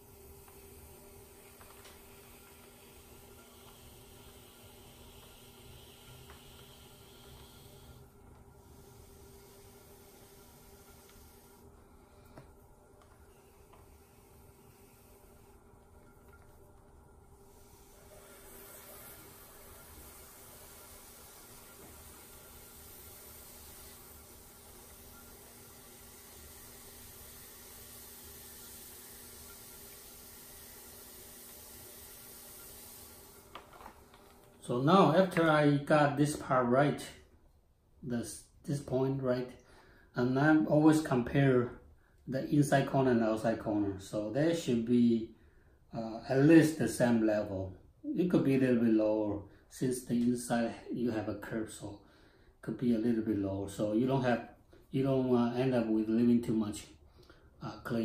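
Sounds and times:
potter's wheel humming: 0:00.0 - 0:37.3.

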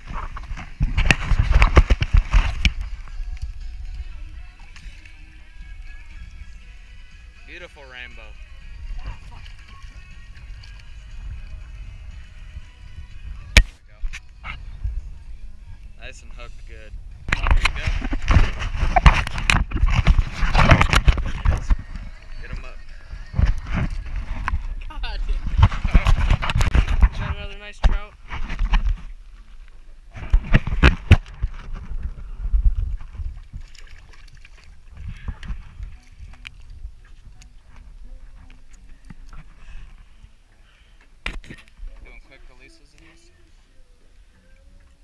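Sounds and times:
water splashing and sloshing: 0:00.0 - 0:14.3, 0:15.8 - 0:43.6.

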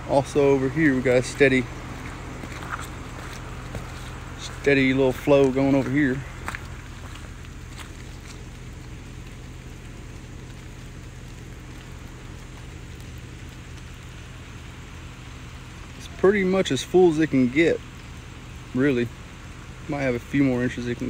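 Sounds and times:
water trickling into pond: 0:00.0 - 0:21.0.

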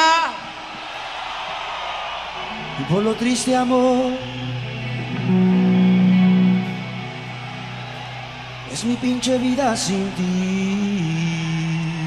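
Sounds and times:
arena crowd shouting and cheering: 0:00.0 - 0:12.0.

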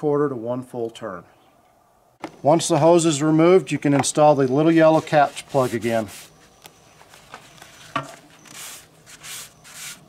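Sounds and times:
cloth wiping over metal: 0:04.4 - 0:10.0.

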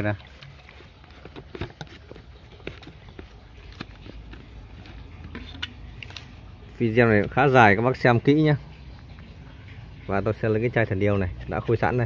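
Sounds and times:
plastic pump head unscrewing: 0:00.0 - 0:07.4.

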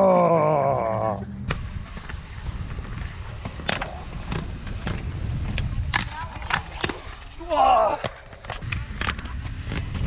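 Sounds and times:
skate wheels rolling on concrete: 0:00.1 - 0:10.0
clicks and knocks from skate wheels: 0:01.5 - 0:10.0.

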